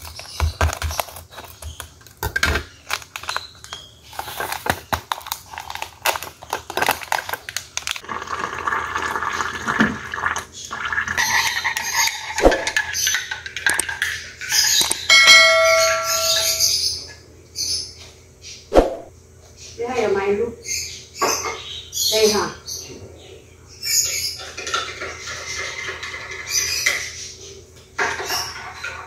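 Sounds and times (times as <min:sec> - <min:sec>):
sachet rustling: 0:02.8 - 0:08.0
spoon stirring and clinking in mug: 0:11.2 - 0:16.8
clear bell-like ring: 0:15.1 - 0:16.8.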